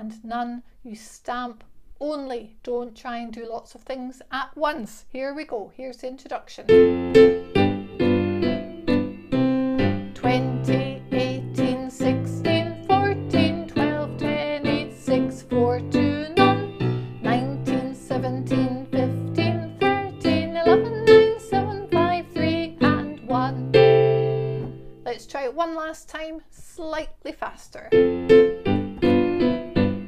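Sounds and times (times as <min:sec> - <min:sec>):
electronic keyboard tune: 0:06.7 - 0:24.9, 0:28.0 - 0:30.0.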